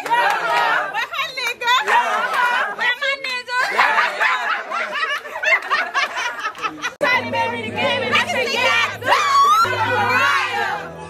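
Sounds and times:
women shouting and talking: 0:00.0 - 0:10.9
women laughing: 0:03.5 - 0:07.1, 0:09.0 - 0:10.6.

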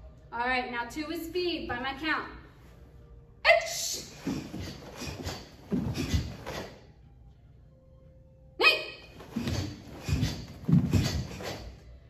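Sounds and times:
sharp exhales: 0:04.1 - 0:06.8, 0:09.2 - 0:11.8
swish of punches: 0:04.2 - 0:06.7, 0:09.4 - 0:11.7.

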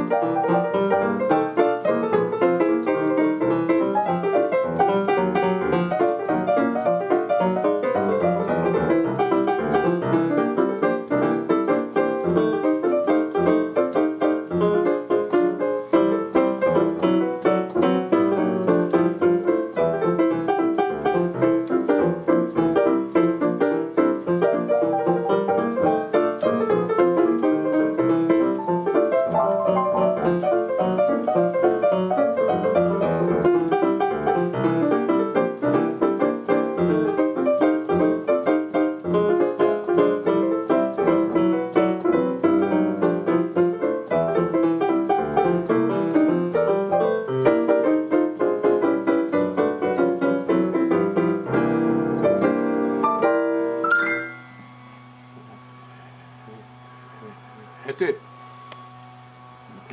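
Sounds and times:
digital piano playing quick notes: 0:00.0 - 0:58.2.

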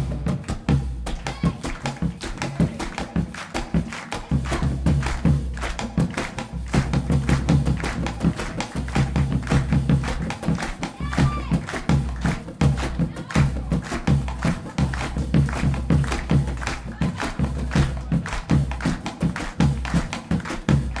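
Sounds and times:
bass and drums: 0:00.0 - 0:01.6, 0:04.5 - 0:18.9
hands clapping: 0:00.0 - 0:21.0.

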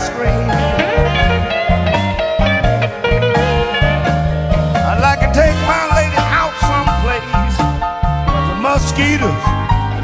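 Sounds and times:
electric blues band playing: 0:00.0 - 0:10.0
electric guitar: 0:00.0 - 0:10.0.

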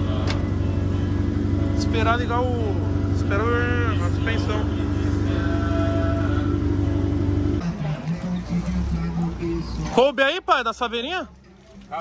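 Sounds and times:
pickup engine idling: 0:00.0 - 0:10.0.

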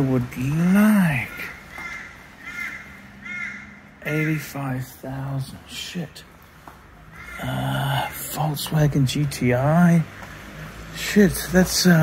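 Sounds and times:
bird calling: 0:00.4 - 0:05.0, 0:07.0 - 0:08.5.

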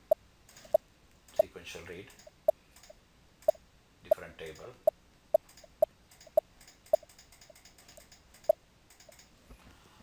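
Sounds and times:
computer mouse clicking: 0:05.4 - 0:09.3.

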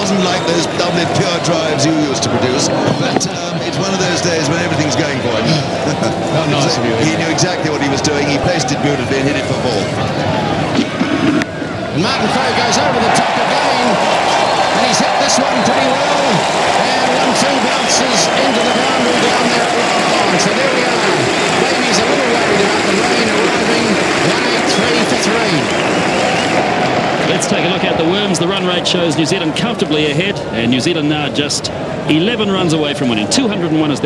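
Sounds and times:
crowd cheering and shouting: 0:00.0 - 0:34.0.

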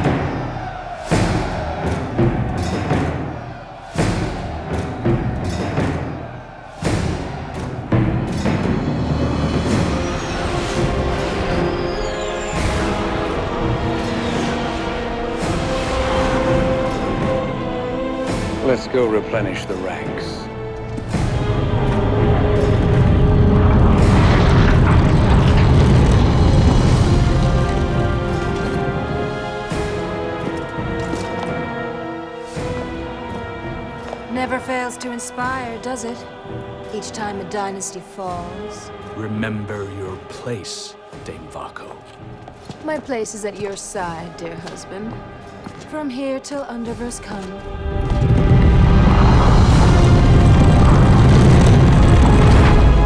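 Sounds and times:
dark orchestral music: 0:00.0 - 0:53.0
deep cinematic rumble: 0:20.3 - 0:30.3, 0:47.5 - 0:53.0.

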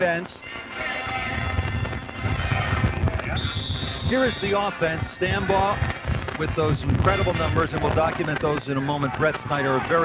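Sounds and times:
steady high-pitched tone: 0:00.0 - 0:05.8
background music: 0:00.0 - 0:10.0
low uneven rumble: 0:00.7 - 0:09.9.

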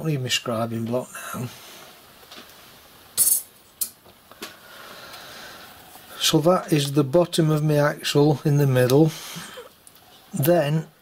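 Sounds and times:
metallic rattle of tools: 0:03.2 - 0:04.0.

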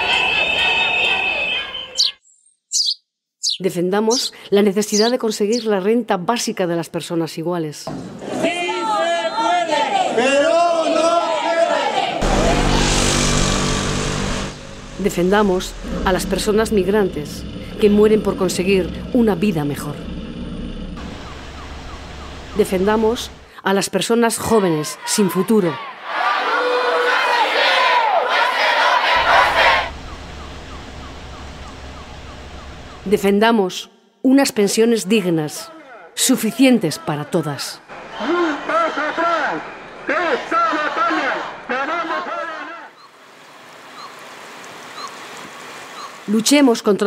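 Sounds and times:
rushing outdoor hiss: 0:12.2 - 0:19.4, 0:21.0 - 0:23.5, 0:29.2 - 0:33.2, 0:43.1 - 0:46.3
faint rising siren: 0:12.2 - 0:23.5, 0:28.3 - 0:33.3
low steady drone: 0:12.2 - 0:23.5, 0:29.2 - 0:33.2.

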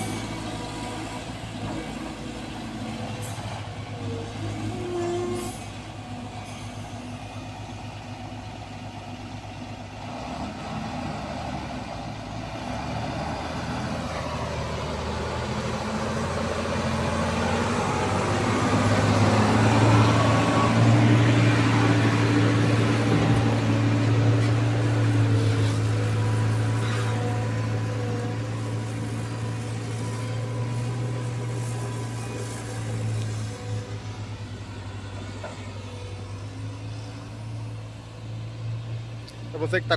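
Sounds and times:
dump truck driving past: 0:00.0 - 0:39.9
excavator diesel engine running: 0:00.0 - 0:39.9.

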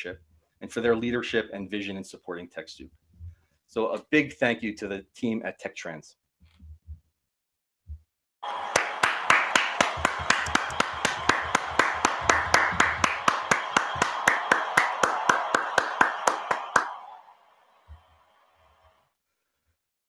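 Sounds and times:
hands clapping: 0:08.4 - 0:17.3
applause: 0:08.4 - 0:18.8.

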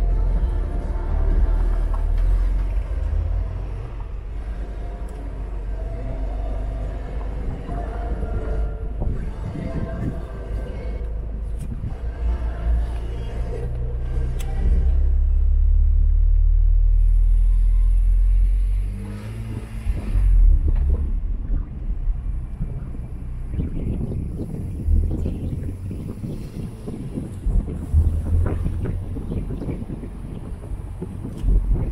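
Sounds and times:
wind buffeting microphone: 0:00.0 - 0:15.1, 0:19.4 - 0:31.9
car engine driving off: 0:00.0 - 0:31.9.

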